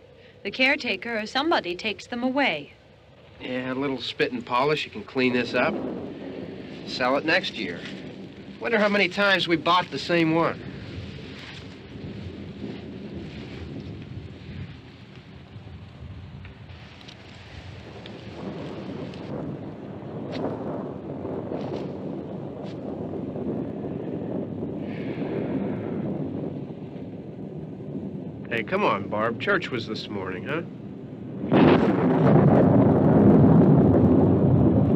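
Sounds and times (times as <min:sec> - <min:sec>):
distant thunder rumbling: 0:00.0 - 0:34.9
wind: 0:00.0 - 0:34.9.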